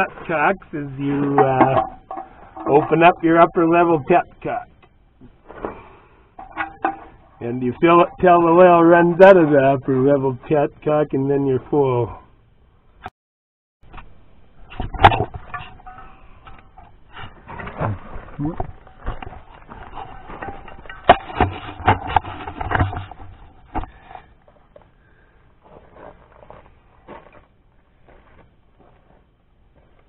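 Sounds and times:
handling knocks and clicks: 0:01.2 - 0:03.2.

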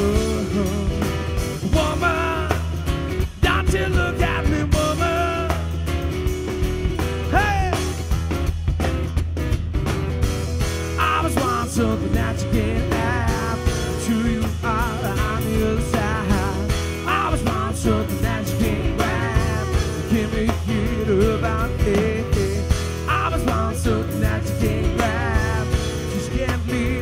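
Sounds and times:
bass: 0:00.0 - 0:27.0
drums: 0:00.0 - 0:27.0
guitar: 0:00.0 - 0:27.0.

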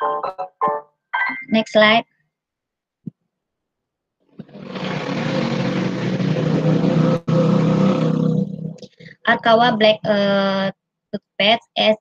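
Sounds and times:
loud rushing noise with hum: 0:04.4 - 0:08.8.

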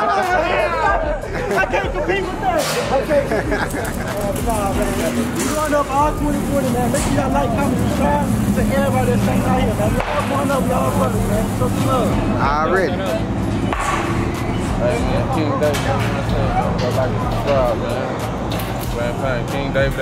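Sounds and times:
crowd chatter: 0:00.0 - 0:20.0.

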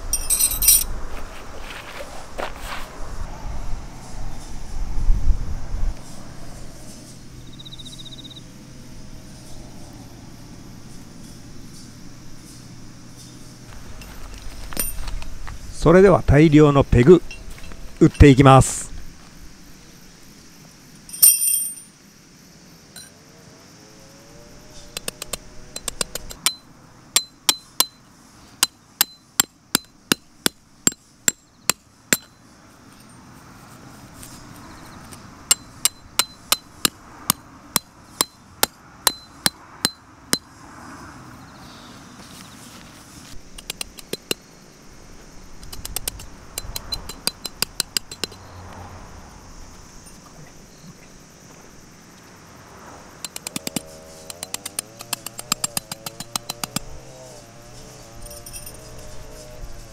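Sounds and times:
tent pegs being hammered: 0:25.0 - 0:28.0, 0:28.6 - 0:32.4, 0:35.5 - 0:40.5, 0:43.5 - 0:44.4, 0:45.6 - 0:48.4, 0:53.2 - 0:57.0.

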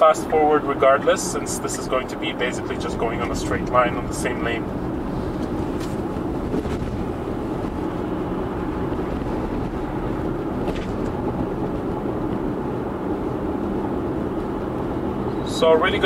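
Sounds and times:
tyre and road noise: 0:00.0 - 0:16.0.

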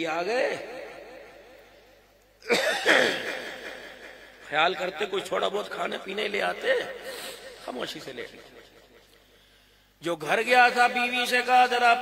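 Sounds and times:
man coughing: 0:02.4 - 0:04.2.

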